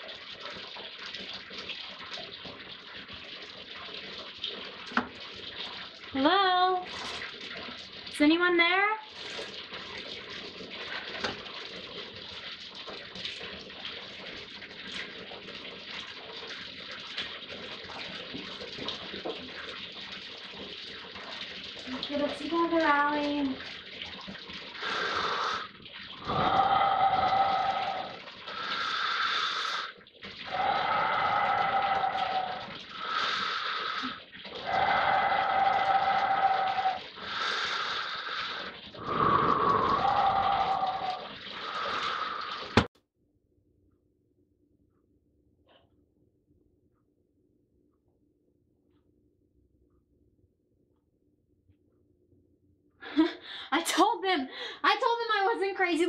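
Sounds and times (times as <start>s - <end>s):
water running at a sink: 0.0s - 42.9s, 53.0s - 56.0s.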